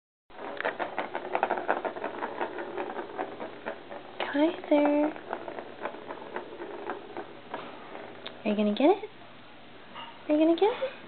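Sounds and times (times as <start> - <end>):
plastic ball rattling around track: 0.3 - 8.8.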